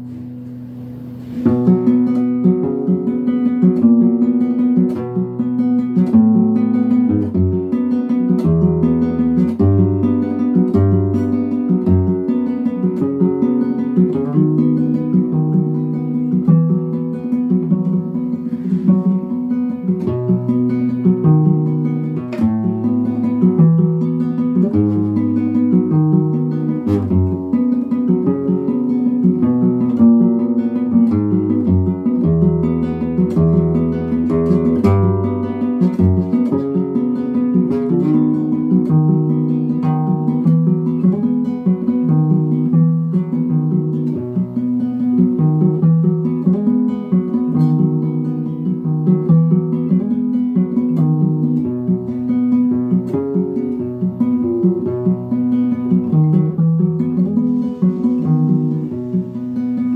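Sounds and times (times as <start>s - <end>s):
fingerpicked classical guitar: 0.0s - 59.9s.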